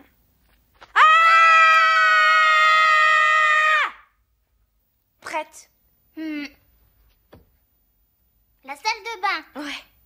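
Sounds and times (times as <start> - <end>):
girl screaming: 1.0 - 4.1.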